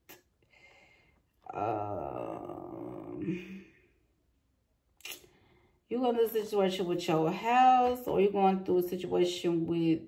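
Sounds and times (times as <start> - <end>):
woman's voice: 1.4 - 3.8, 5.9 - 10.0.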